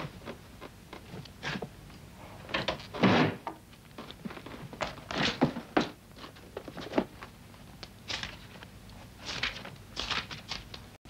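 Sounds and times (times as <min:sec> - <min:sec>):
book pages rustling: 0:08.1 - 0:10.9.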